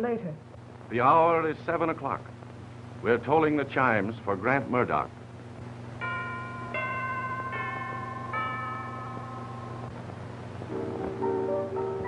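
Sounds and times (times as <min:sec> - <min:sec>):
steady low hum: 0:00.0 - 0:12.0
chimes tolling: 0:06.0 - 0:09.9.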